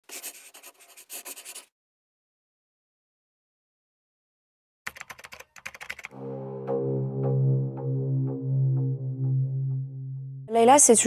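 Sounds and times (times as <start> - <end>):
typing on computer keyboard: 4.9 - 6.1.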